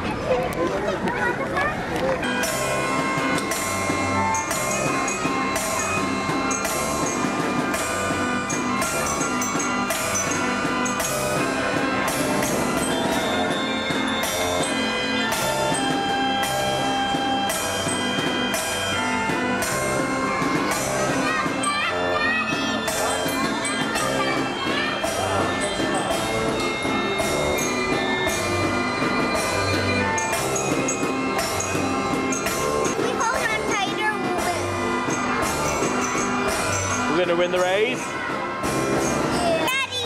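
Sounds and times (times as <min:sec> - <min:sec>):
fairground band organ playing: 0:01.4 - 0:40.0.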